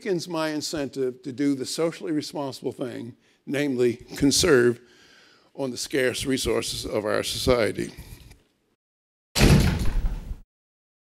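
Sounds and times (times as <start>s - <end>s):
heavy thud-like burst: 9.4s - 10.4s.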